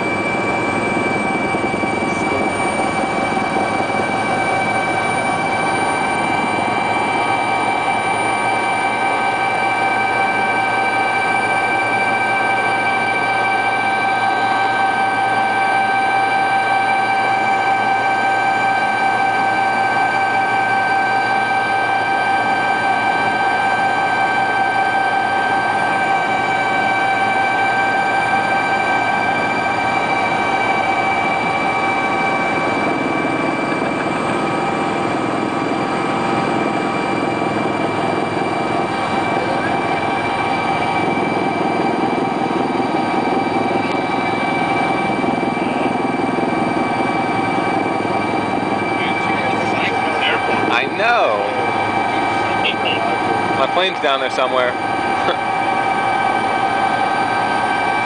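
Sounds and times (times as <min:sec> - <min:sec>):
helicopter cabin rush: 0:00.0 - 0:58.0
high whining tones: 0:00.0 - 0:58.0.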